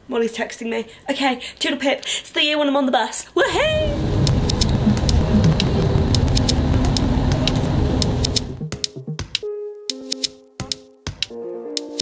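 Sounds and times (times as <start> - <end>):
bus road rumble: 3.5 - 8.6
raindrops ticking on window: 4.0 - 8.6.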